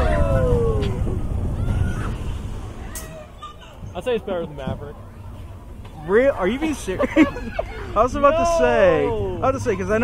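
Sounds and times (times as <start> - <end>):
wind on microphone: 0.0 - 2.9
roller coaster rumbling on track: 0.0 - 10.0.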